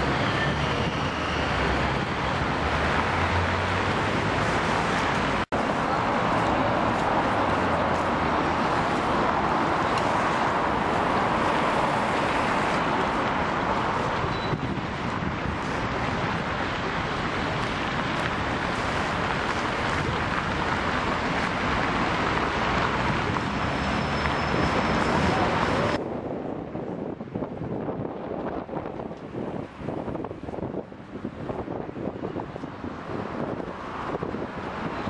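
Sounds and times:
cars passing on busy street: 0:00.0 - 0:35.0.

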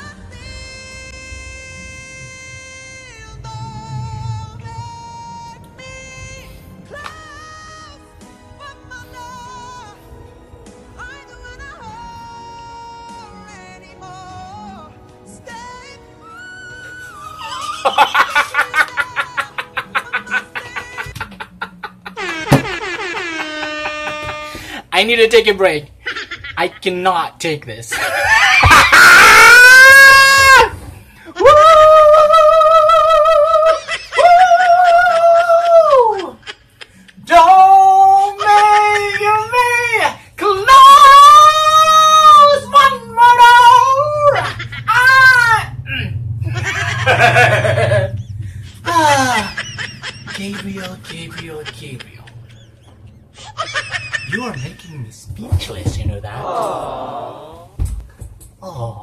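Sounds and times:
man squealing: 0:22.1 - 0:24.8, 0:28.1 - 0:30.8, 0:31.4 - 0:48.2, 0:48.8 - 0:52.5
man laughing breathily: 0:33.6 - 0:37.3, 0:46.4 - 0:54.5.

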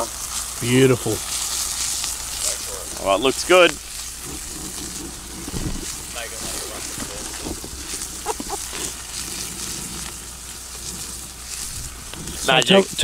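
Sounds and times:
steak sizzling: 0:00.0 - 0:13.0
faint voices: 0:02.3 - 0:11.4.

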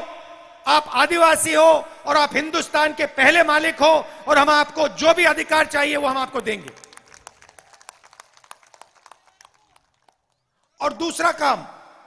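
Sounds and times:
crowd handclaps: 0:06.3 - 0:10.8.

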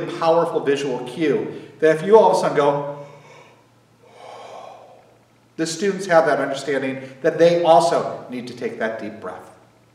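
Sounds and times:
man yawning: 0:03.0 - 0:05.2.

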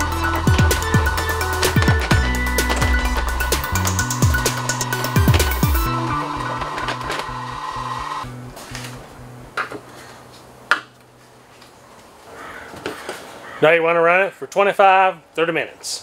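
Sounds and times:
electronic music with drum beat: 0:00.0 - 0:08.4.

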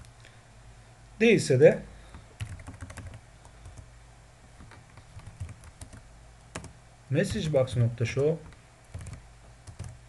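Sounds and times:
typing on computer keyboard: 0:02.4 - 0:03.9, 0:04.6 - 0:06.7, 0:08.4 - 0:10.0.

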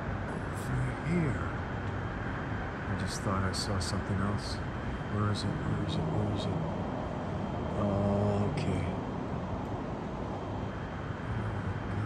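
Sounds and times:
city traffic rumble: 0:00.0 - 0:12.0
low hum: 0:00.0 - 0:12.0.

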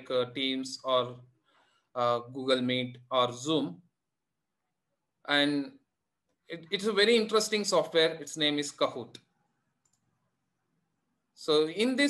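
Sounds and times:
computer mouse click: 0:09.8 - 0:10.1.

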